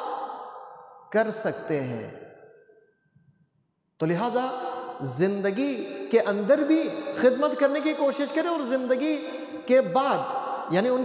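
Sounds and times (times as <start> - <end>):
man speaking: 1.1 - 2.2, 4.0 - 11.0.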